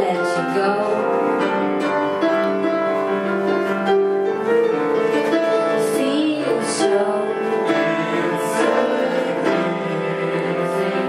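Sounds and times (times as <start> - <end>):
upright piano playing chords: 0.0 - 11.0.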